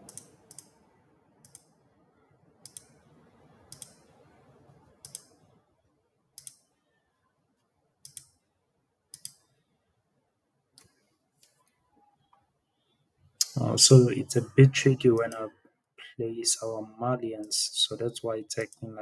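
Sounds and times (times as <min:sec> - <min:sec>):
computer mouse clicks: 0:00.0 - 0:00.8, 0:01.4 - 0:01.7, 0:02.6 - 0:03.0, 0:03.7 - 0:04.1, 0:05.0 - 0:05.3, 0:06.4 - 0:06.7, 0:08.0 - 0:08.4, 0:09.1 - 0:09.5, 0:18.6 - 0:18.9.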